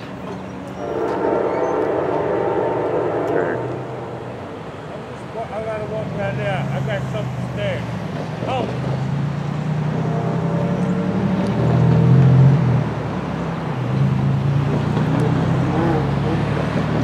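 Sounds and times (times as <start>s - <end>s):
engine drone: 0.0s - 7.8s.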